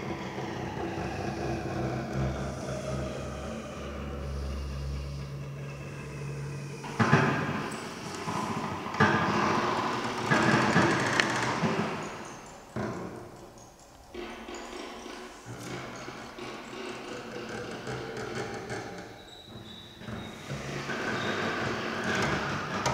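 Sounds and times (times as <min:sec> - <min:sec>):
double bass bowed low note: 0:00.0 - 0:08.9.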